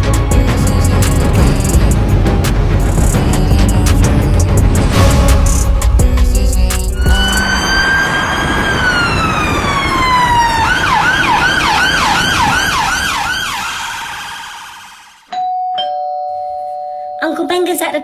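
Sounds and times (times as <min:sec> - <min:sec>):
ambulance siren wail and yelp: 0:07.0 - 0:15.2.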